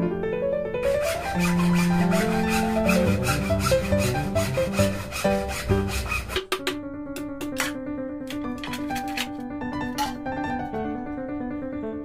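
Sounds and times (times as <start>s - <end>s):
background music: 0.0s - 12.0s
hand saw rasping through bamboo: 0.8s - 6.5s.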